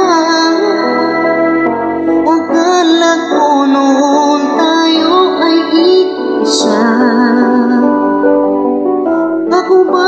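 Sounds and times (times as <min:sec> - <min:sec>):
instrumental accompaniment: 0:00.0 - 0:10.0
person singing a slow ballad: 0:00.0 - 0:10.0.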